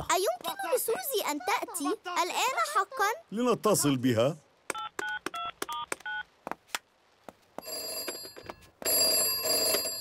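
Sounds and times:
telephone bell ringing: 0:07.6 - 0:10.0.

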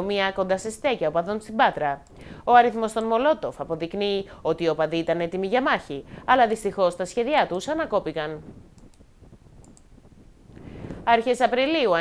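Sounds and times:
low room noise: 0:00.0 - 0:12.0
faint clicks: 0:02.0 - 0:02.3, 0:08.6 - 0:09.9
woman breathing in: 0:02.2 - 0:02.5, 0:10.5 - 0:11.0.

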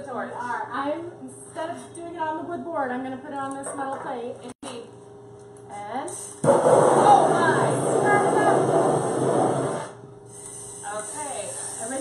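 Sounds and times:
blowtorch hissing: 0:06.4 - 0:12.0.

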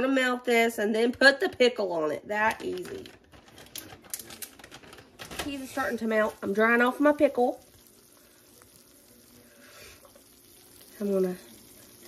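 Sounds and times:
cheese sizzling in skillet: 0:03.6 - 0:12.0.

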